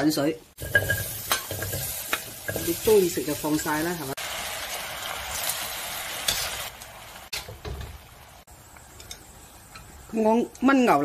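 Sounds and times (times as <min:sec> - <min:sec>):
meat and sauce sizzling: 0:00.0 - 0:11.0.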